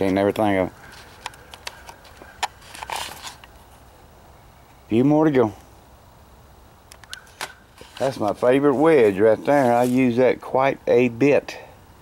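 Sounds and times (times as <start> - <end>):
man speaking: 0.0 - 0.8, 4.9 - 5.6, 8.0 - 11.7
camera handling rustle: 0.8 - 3.8, 6.9 - 10.1.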